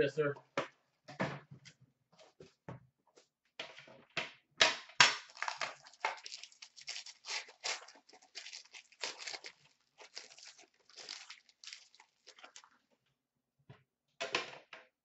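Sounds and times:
foil wrapper crinkling and tearing: 0:05.2 - 0:12.8.

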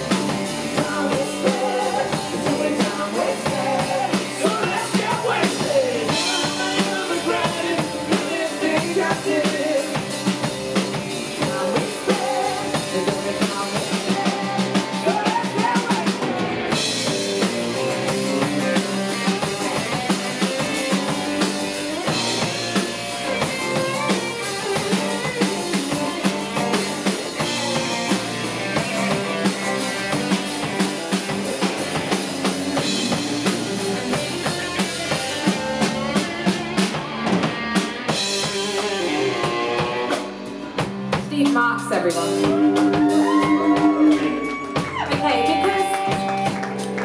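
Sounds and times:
bending electric guitar lead: 0:00.0 - 0:47.0
drum kit: 0:00.0 - 0:47.0.

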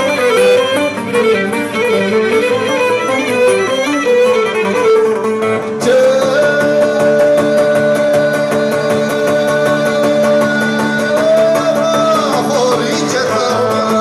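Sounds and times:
bowed lyra melody: 0:00.0 - 0:14.0
plucked lute accompaniment: 0:00.0 - 0:14.0.

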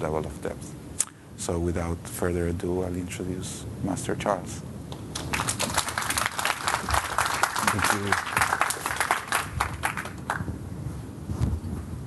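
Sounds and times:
audience applause: 0:05.2 - 0:10.5.

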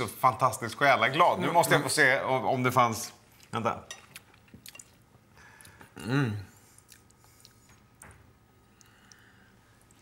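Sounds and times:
quiet chewing: 0:03.3 - 0:06.0, 0:06.6 - 0:10.0.

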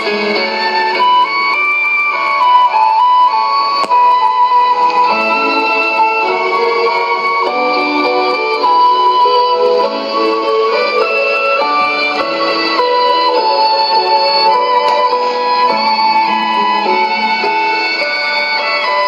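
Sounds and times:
instrumental music on radio: 0:00.0 - 0:19.0.

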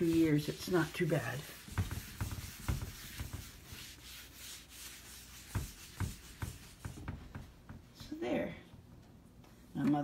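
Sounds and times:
cloth rubbing on wood: 0:00.0 - 0:08.1
soft bumps: 0:05.4 - 0:08.5.

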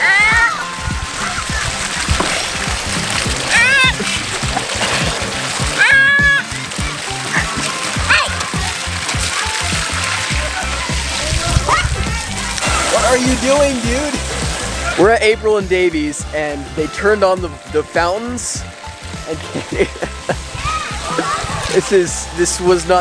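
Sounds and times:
background music with steady beat: 0:00.0 - 0:23.0
fountain jets splashing on pavement: 0:00.0 - 0:23.0
toddler squealing: 0:03.5 - 0:04.0, 0:05.8 - 0:06.5.

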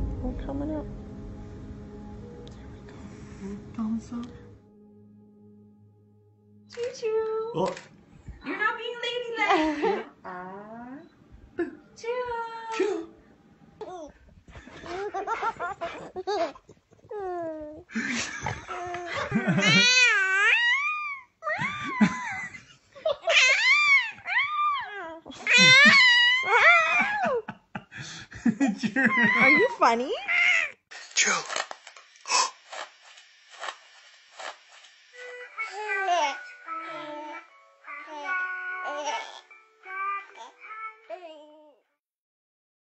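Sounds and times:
soft music: 0:00.0 - 0:15.2, 0:35.2 - 0:41.8
baby girl squealing and cooing: 0:18.8 - 0:22.2, 0:23.2 - 0:27.1, 0:29.2 - 0:30.8
baby cooing and babbling: 0:24.1 - 0:25.7, 0:35.6 - 0:41.8.

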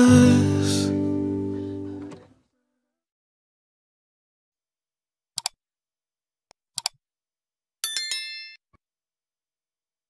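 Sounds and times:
bell-like ding: 0:07.8 - 0:08.6.

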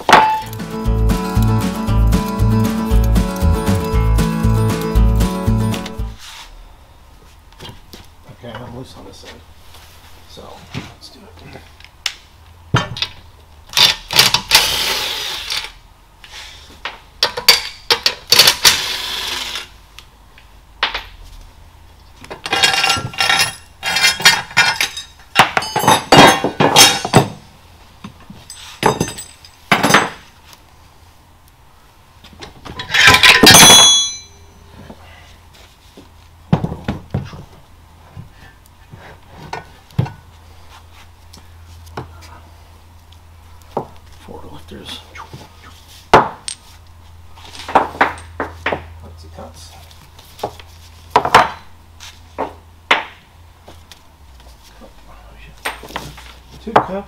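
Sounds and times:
metal clanking and clinking: 0:00.0 - 0:00.6, 0:22.4 - 0:27.4, 0:28.4 - 0:30.2, 0:32.8 - 0:34.5
tools set down on workbench: 0:00.0 - 0:00.6, 0:22.4 - 0:27.4, 0:28.8 - 0:30.2, 0:32.7 - 0:34.4
metal parts clattering: 0:22.4 - 0:27.3, 0:28.5 - 0:30.1, 0:32.8 - 0:34.4.

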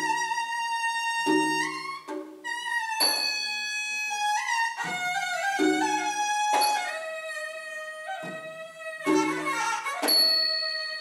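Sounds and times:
reedy oboe melody: 0:00.0 - 0:11.0
drum strokes: 0:01.1 - 0:07.0.

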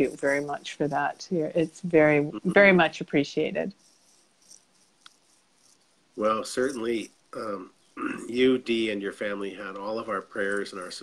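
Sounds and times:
tiny ticks: 0:05.0 - 0:05.2.

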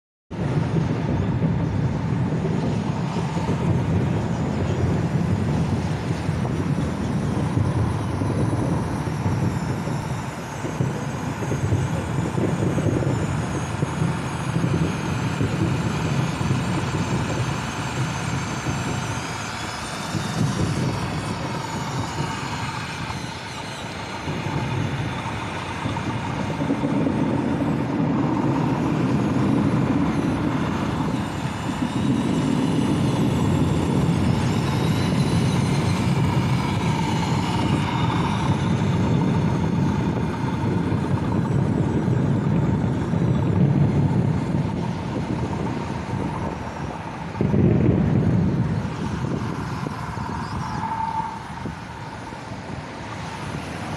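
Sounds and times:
electric motors and gearboxes whining: 0:00.4 - 0:53.9.

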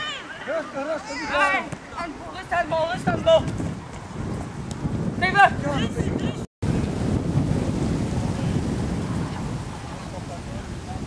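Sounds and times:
wind buffeting microphone: 0:01.2 - 0:11.0.

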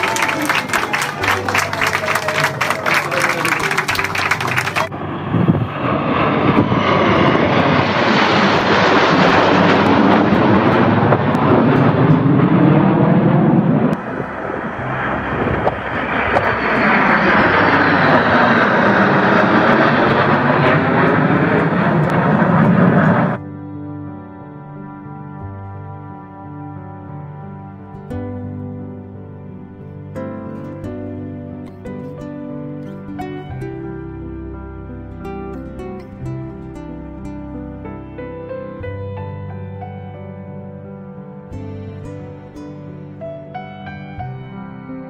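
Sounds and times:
applause: 0:00.0 - 0:04.9
military jets flying over: 0:00.0 - 0:25.6.

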